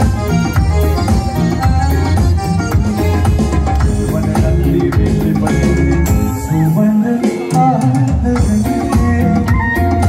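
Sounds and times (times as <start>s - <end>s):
live pop band playing: 0.0s - 10.0s
man singing: 3.0s - 10.0s.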